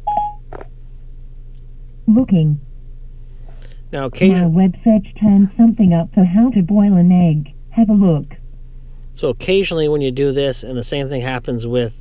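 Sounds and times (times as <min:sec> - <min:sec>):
short electronic beep: 0:00.0 - 0:00.4
low steady hum: 0:00.0 - 0:12.0.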